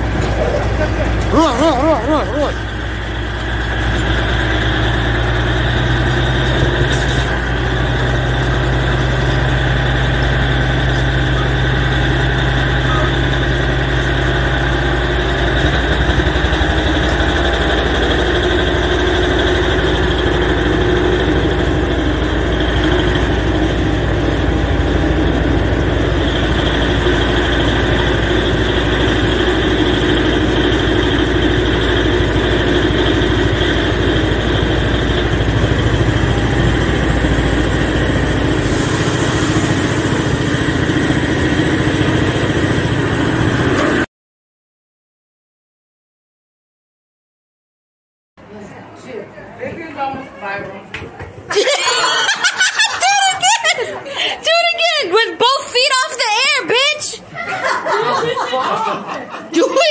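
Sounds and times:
diesel locomotive engine rumbling: 0.0s - 44.1s, 48.4s - 59.9s.

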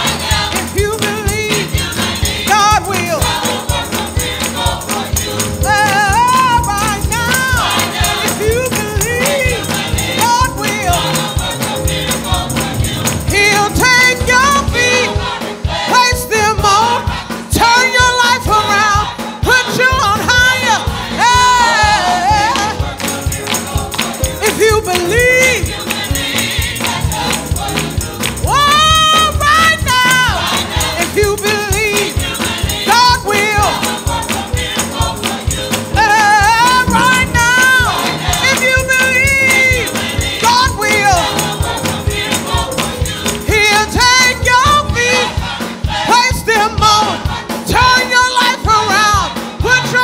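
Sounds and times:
gospel choir singing with band: 0.0s - 50.0s
tambourine: 0.0s - 50.0s
hand clapping: 23.0s - 25.1s.

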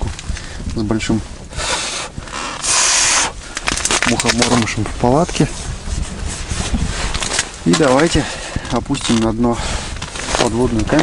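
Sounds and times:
hissing rustling noise: 0.0s - 11.0s.

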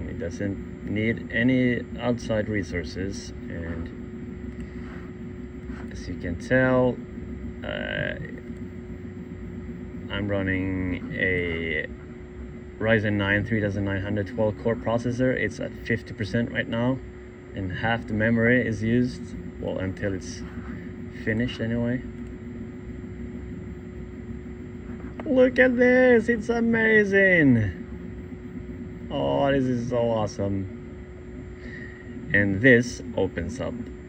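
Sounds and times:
computer fan hum: 0.0s - 34.0s
faint steady tone: 0.0s - 34.0s.

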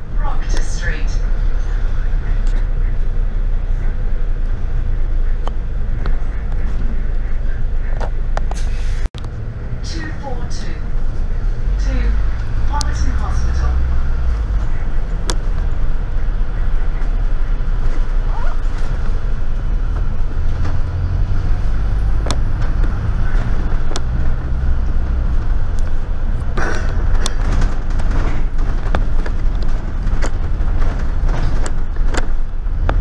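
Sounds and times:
bus engine and road rumble: 0.0s - 33.0s
bodywork clicks and knocks: 22.2s - 24.4s, 25.4s - 33.0s.

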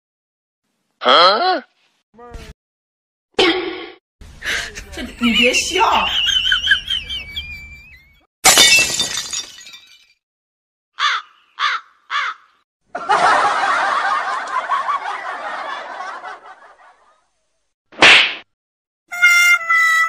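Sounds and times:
glass breaking crash: 8.4s - 10.2s.

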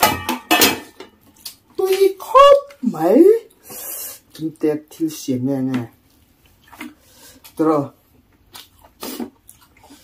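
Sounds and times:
clatter of food and plates: 0.0s - 1.2s
person speaking: 1.7s - 6.0s.

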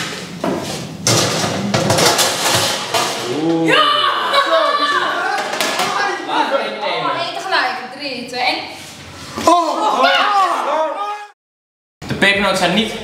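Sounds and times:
metal baking tray clattering: 1.0s - 3.4s
young voices shouting excitedly: 3.3s - 7.4s, 9.4s - 11.4s.

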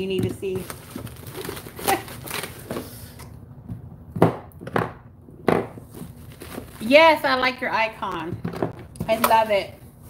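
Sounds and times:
cardboard and packaging knocks: 4.1s - 6.8s.

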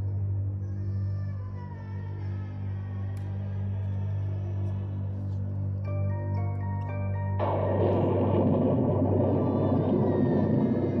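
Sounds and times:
eerie low drone: 0.0s - 11.0s.

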